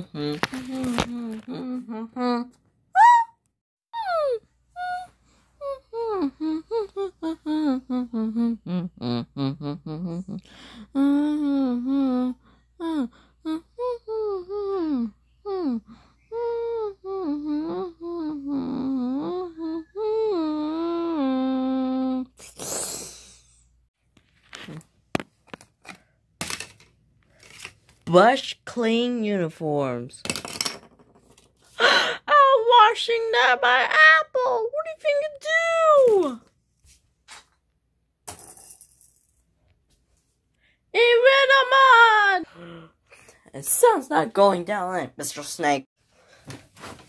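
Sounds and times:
child's high-pitched wavering vocal: 0.0s - 22.4s
voice humming a long note: 4.0s - 22.4s.

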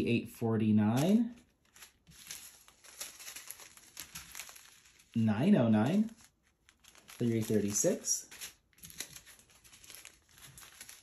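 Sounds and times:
plastic bags crinkling: 0.9s - 11.0s.

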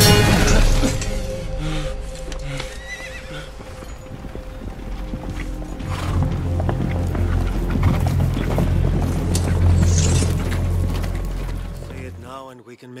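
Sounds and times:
soundtrack music: 0.0s - 12.5s
horse hooves clip-clopping: 2.6s - 12.3s
horse whinnying: 2.7s - 4.0s, 5.8s - 6.4s.

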